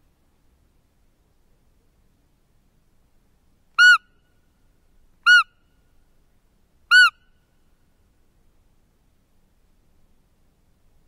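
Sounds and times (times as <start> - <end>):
deer call high-pitched peeps: 3.8 - 4.1, 5.2 - 5.6, 6.9 - 7.3.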